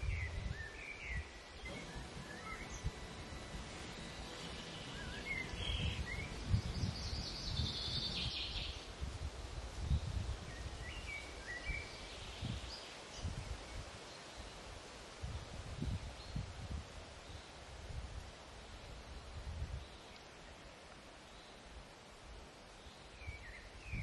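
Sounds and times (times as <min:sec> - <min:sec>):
whistled bird notes: 0:00.0 - 0:08.8
small birds calling: 0:00.0 - 0:08.9
wind rumble on microphone: 0:00.0 - 0:20.0, 0:23.2 - 0:24.0
buzzy bird trill: 0:01.6 - 0:08.6.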